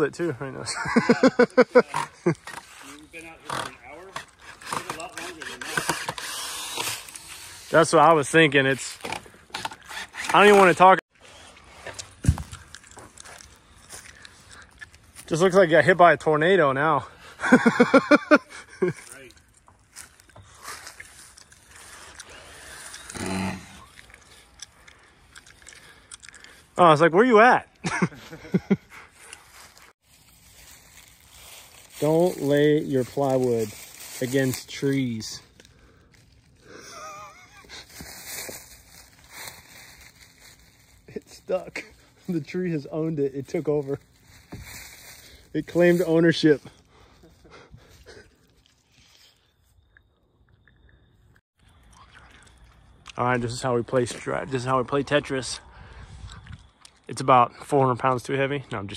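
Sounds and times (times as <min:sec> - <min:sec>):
plywood creaking and squeaking: 0:01.8 - 0:07.2
footsteps through dry leaves: 0:19.8 - 0:22.0, 0:29.4 - 0:36.6, 0:37.6 - 0:41.2, 0:43.4 - 0:46.3.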